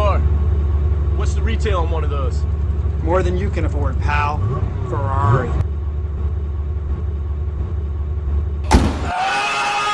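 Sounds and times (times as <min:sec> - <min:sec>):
sports car engine idling: 0:00.0 - 0:09.0
loud thump: 0:08.6 - 0:09.2.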